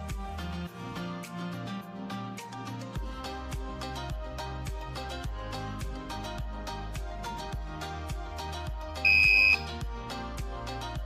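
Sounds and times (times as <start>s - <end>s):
background music: 0.0s - 11.0s
high-pitched buzzer beep: 9.1s - 9.7s.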